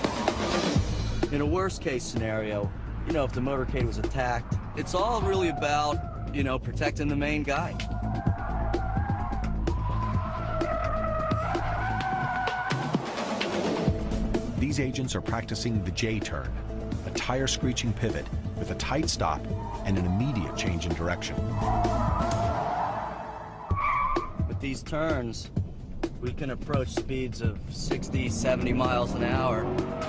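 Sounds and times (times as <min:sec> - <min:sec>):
tires squealing: 0:00.0 - 0:00.9, 0:01.6 - 0:13.5, 0:17.4 - 0:24.6, 0:27.8 - 0:30.0
music: 0:00.0 - 0:30.0.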